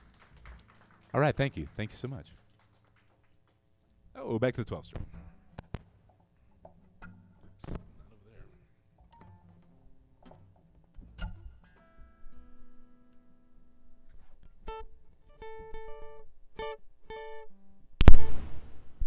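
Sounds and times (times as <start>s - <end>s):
acoustic guitar being tuned: 5.0s - 18.5s
loud sudden crash: 18.1s - 19.0s.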